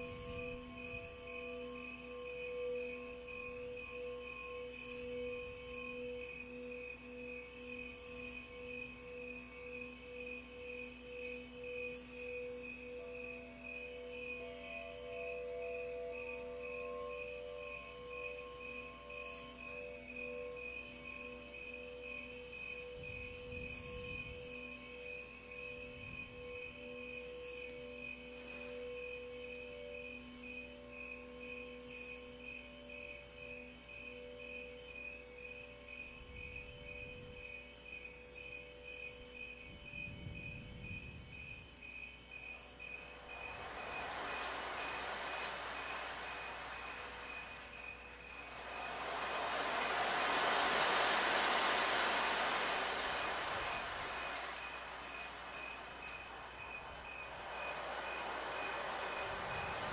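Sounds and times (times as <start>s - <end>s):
soft rushing hiss: 0.0s - 59.9s.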